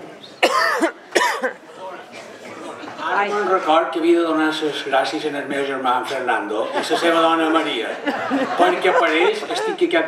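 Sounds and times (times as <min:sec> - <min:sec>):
person coughing: 0:00.4 - 0:01.6.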